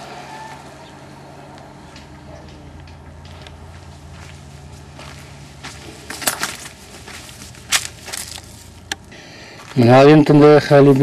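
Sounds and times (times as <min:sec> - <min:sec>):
crunching rustles: 0:03.2 - 0:11.0.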